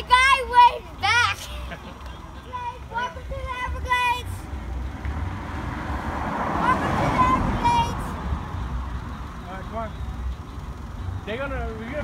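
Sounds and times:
car passing on highway: 0:00.0 - 0:12.0.

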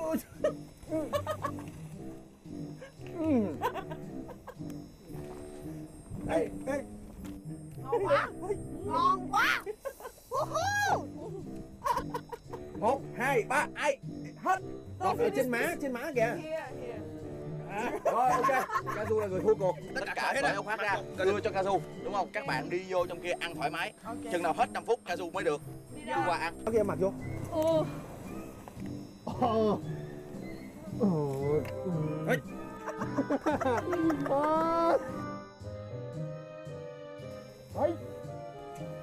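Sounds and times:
background music: 0:00.0 - 0:39.0
people shouting and squealing: 0:08.1 - 0:11.3.

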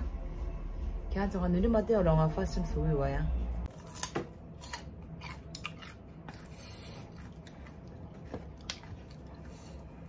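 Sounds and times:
person biting into food: 0:03.7 - 0:07.2
crisp chewing: 0:03.7 - 0:10.0.

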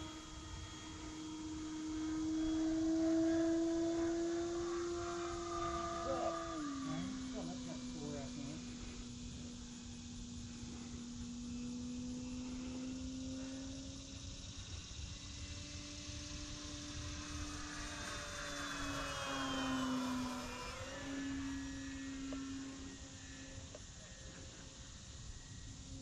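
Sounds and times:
model plane motor whining: 0:00.0 - 0:26.0.

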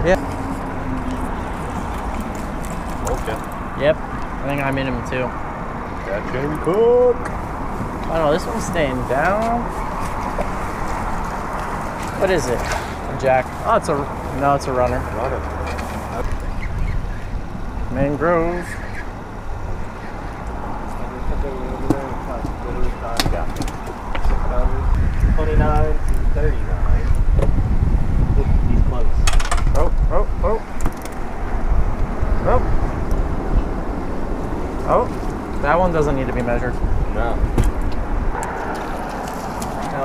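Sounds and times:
wind rumble on microphone: 0:00.0 - 0:40.0
wind rushing: 0:23.9 - 0:40.0.

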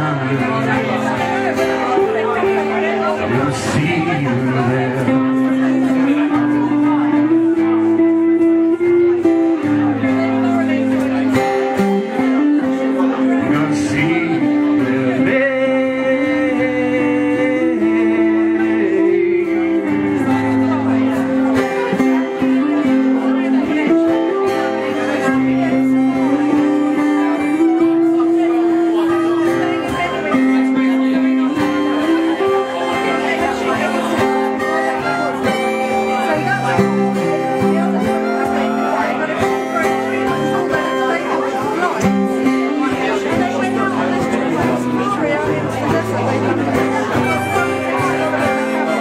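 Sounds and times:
acoustic guitar rhythm: 0:00.0 - 0:49.0
electric guitar sustained melody: 0:00.0 - 0:49.0.

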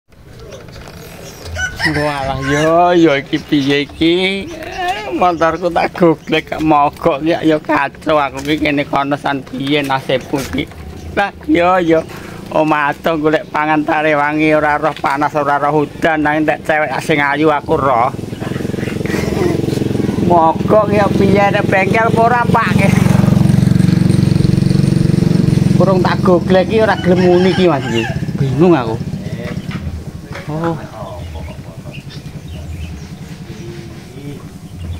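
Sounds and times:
small motorcycle engine running: 0:00.2 - 0:34.9
distant rooster crowing: 0:01.4 - 0:03.9, 0:26.2 - 0:29.9.

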